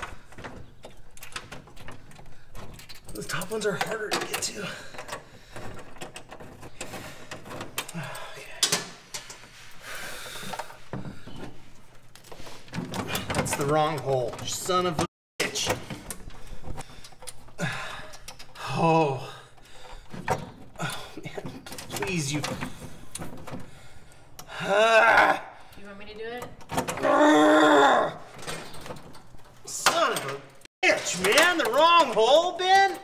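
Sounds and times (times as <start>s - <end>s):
man groaning and muttering: 18.6s - 19.5s, 24.5s - 25.5s, 27.0s - 28.2s.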